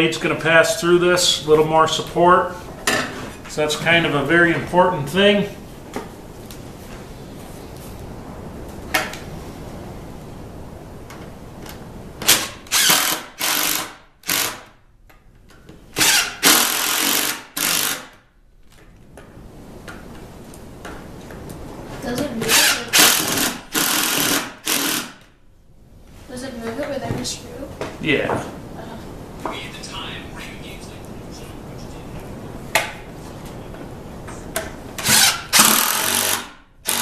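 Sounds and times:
impact driver driving screws: 12.2s - 14.7s, 16.0s - 18.2s, 22.5s - 25.2s, 35.0s - 37.0s.

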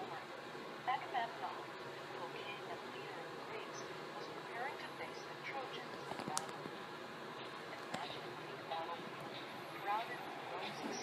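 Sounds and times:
indistinct background chatter: 0.0s - 11.0s
room noise: 0.0s - 11.0s.

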